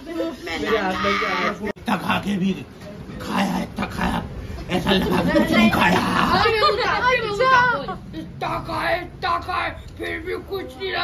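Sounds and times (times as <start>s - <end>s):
man making animal-like sounds: 3.2s - 6.5s.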